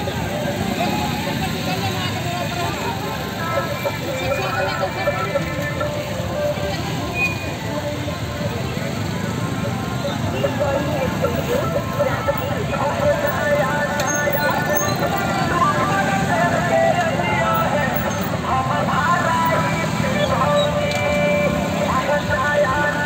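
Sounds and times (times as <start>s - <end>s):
motorcycle engines: 0.0s - 23.0s
voices: 0.0s - 23.0s.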